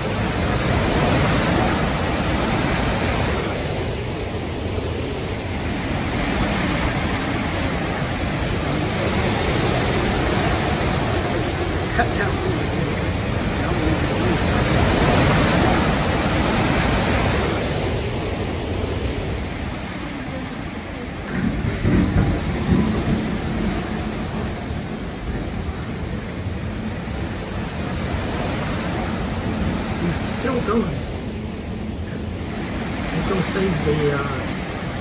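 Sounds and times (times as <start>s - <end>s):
heavy wind-driven rain hissing: 0.0s - 35.0s
strong wind roaring: 0.0s - 35.0s.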